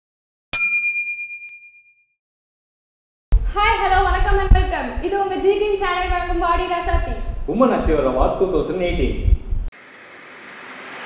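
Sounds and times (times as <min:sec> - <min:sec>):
notification bell ding: 0:00.6 - 0:02.0.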